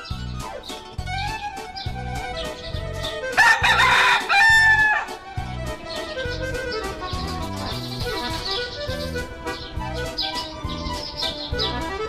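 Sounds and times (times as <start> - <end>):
background music: 0.0 - 12.0
rooster crowing: 3.4 - 5.2.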